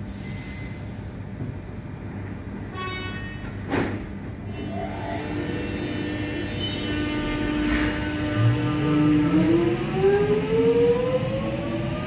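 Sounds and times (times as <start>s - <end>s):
idling train hum: 0.0s - 12.0s
train doors shutting with hiss: 3.6s - 4.2s.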